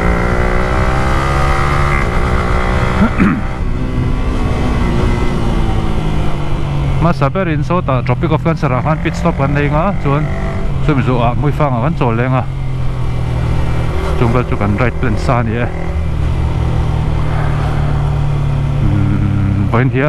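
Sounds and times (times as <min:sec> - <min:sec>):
man talking: 0:03.0 - 0:03.4, 0:07.0 - 0:12.5, 0:14.2 - 0:15.8, 0:18.8 - 0:20.0
motorcycle engine running: 0:08.8 - 0:19.9.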